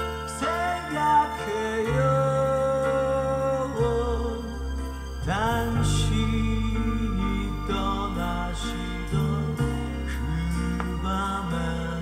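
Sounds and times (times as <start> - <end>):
pop ballad from vinyl record: 0.0 - 12.0.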